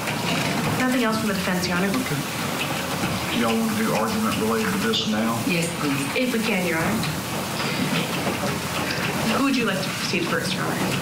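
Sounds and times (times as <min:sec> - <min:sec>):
microphone hiss and room noise: 0:00.0 - 0:11.0.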